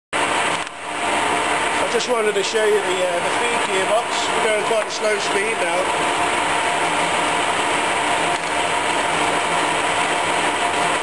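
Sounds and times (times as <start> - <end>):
lathe gear whine: 0.2 - 11.0.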